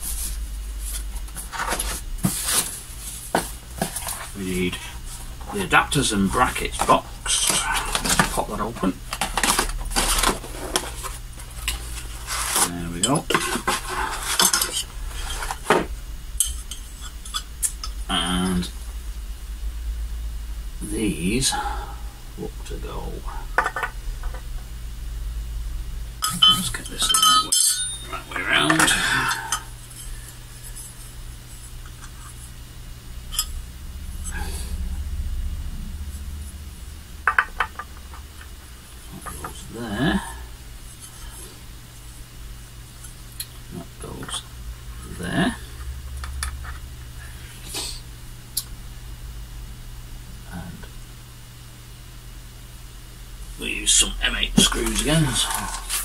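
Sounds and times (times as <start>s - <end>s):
quiet rustling: 0.0s - 16.0s
steady low hum: 0.0s - 56.0s
short whine: 17.9s - 37.3s.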